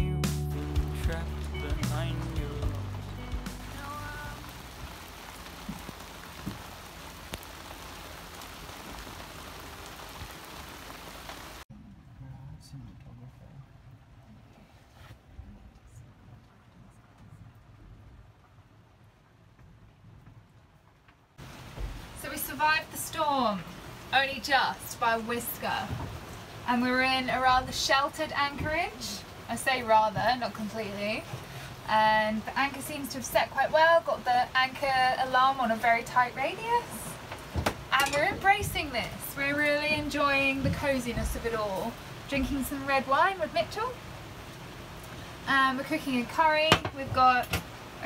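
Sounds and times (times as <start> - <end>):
background music: 0.0 - 4.9
rain on cabin: 0.0 - 48.0.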